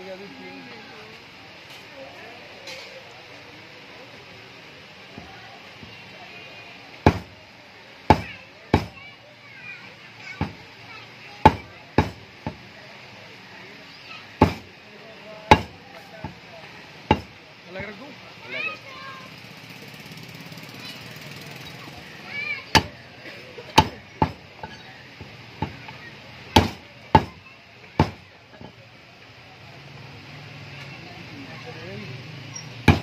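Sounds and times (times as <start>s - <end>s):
faint background voices: 0.0s - 33.0s
cleaver chopping on wooden block: 7.1s - 7.3s, 8.1s - 9.0s, 11.4s - 12.6s, 14.4s - 14.6s, 15.5s - 16.4s, 17.1s - 17.3s, 22.7s - 23.0s, 23.8s - 24.4s, 26.6s - 27.4s, 28.0s - 28.2s.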